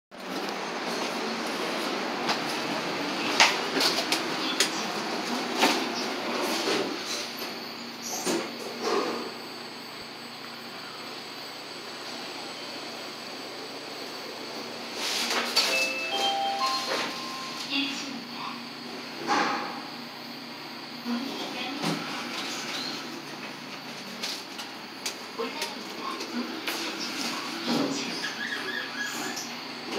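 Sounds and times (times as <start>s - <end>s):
elevator car humming: 0.2s - 15.0s, 15.6s - 19.2s
steady background noise: 0.2s - 29.9s
elevator electronic chime: 15.6s - 18.1s.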